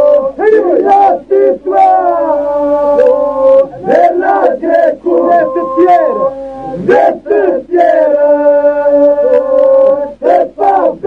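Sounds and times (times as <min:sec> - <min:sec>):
men singing in polyphony: 0:00.0 - 0:11.0.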